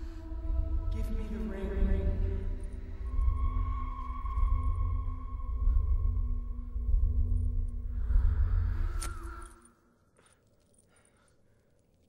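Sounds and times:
deep rumbling drone: 0:00.0 - 0:09.5.

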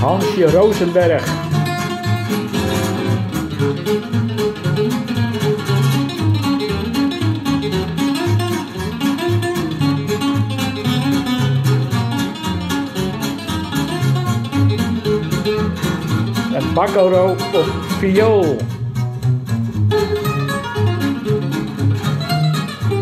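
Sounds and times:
acoustic lead guitar soloing: 0:00.0 - 0:23.0
bass: 0:00.0 - 0:23.0
strummed rhythm guitar: 0:00.0 - 0:23.0.

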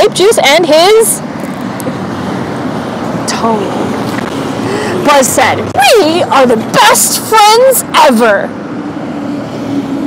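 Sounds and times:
outdoor background hiss and rumble: 0:00.0 - 0:10.0.

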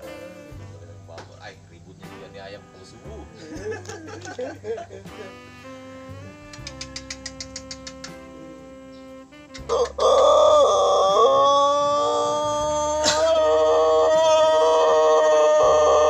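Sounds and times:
background music with held notes: 0:00.0 - 0:16.0
quick ticks: 0:06.4 - 0:08.2
rooster crowing: 0:09.6 - 0:16.0.

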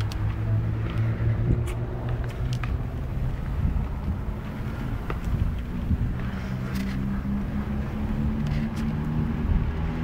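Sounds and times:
vehicle engines rumbling: 0:00.0 - 0:10.0.

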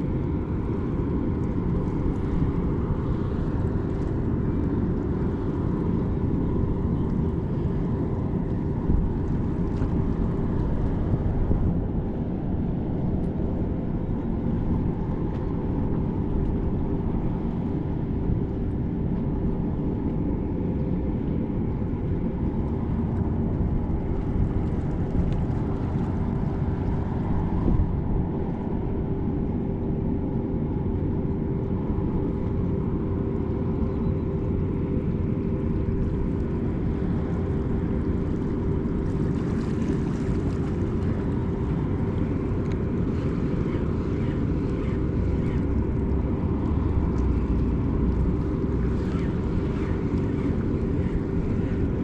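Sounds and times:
low mechanical drone: 0:00.0 - 0:52.0.

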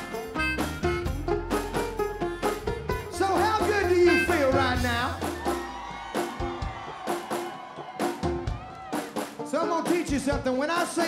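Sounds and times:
live band with singing: 0:00.0 - 0:11.0.

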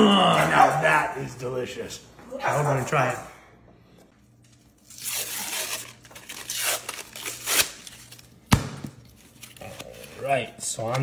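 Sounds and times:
paper wrapper tearing: 0:04.7 - 0:08.4.

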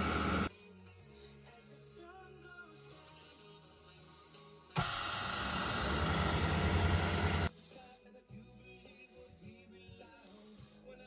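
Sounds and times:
faint background music: 0:00.3 - 0:11.0
wood lathe running: 0:04.8 - 0:07.5.

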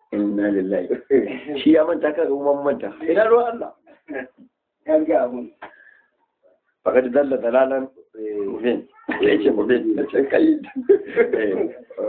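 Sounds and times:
man speaking: 0:00.0 - 0:05.8, 0:06.9 - 0:12.0.

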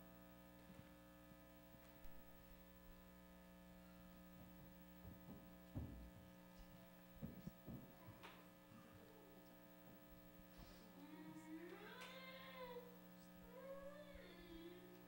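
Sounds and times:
electrical mains hum: 0:00.0 - 0:15.0
faint knocks: 0:05.0 - 0:06.3, 0:07.2 - 0:09.0.

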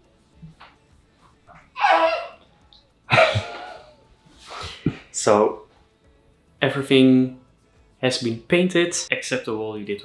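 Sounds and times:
man stifling laughter: 0:03.1 - 0:03.9.

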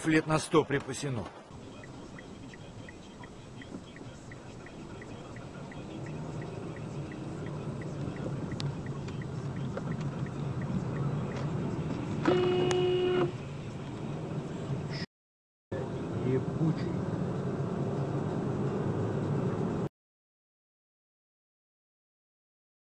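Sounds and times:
car engine and road noise: 0:00.0 - 0:15.1, 0:15.7 - 0:19.9
fast regular ticking: 0:01.5 - 0:11.2
car horn: 0:12.2 - 0:13.4.

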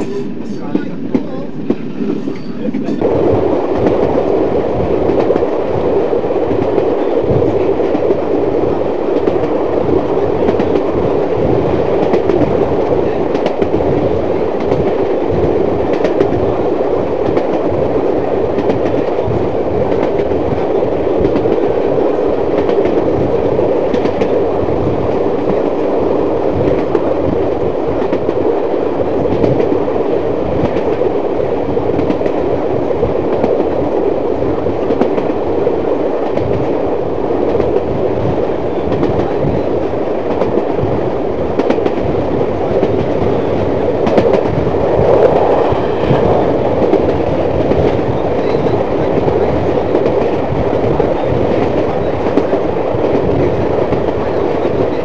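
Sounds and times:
rail joint clicks: 0:00.0 - 0:03.0, 0:40.2 - 0:40.8, 0:41.5 - 0:42.1
train wheels rumbling: 0:00.0 - 0:25.8, 0:38.7 - 0:55.0
wind buffeting microphone: 0:00.0 - 0:55.0.

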